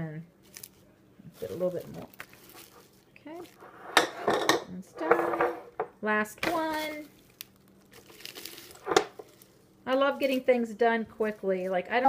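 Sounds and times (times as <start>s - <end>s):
salad leaves rustling: 0.4s - 3.6s, 6.5s - 12.0s.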